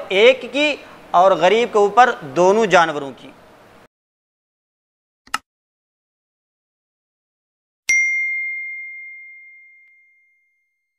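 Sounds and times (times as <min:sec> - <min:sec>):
bell-like ding: 0:07.9 - 0:10.9.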